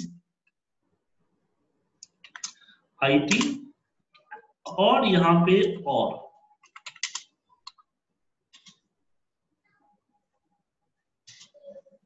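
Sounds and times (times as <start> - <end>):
computer keyboard keystrokes: 6.6 - 7.8.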